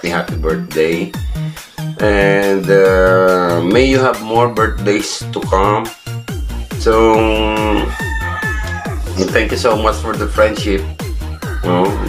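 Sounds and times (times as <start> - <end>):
electronic music with steady beat: 0.0 - 12.0
rooster crowing: 7.6 - 9.3, 11.2 - 12.0.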